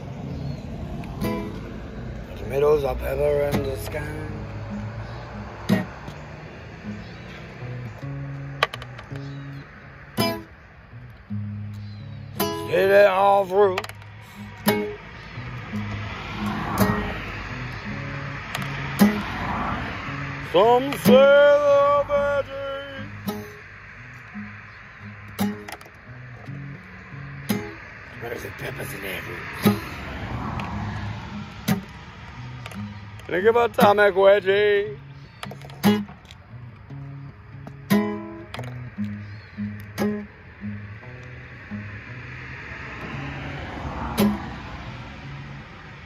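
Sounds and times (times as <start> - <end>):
acoustic guitar chords: 0.4 - 46.0.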